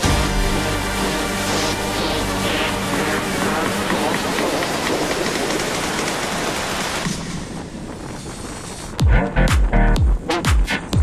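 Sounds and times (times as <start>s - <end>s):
motorcycle road noise: 0.0s - 9.0s
wind rush: 1.2s - 11.0s.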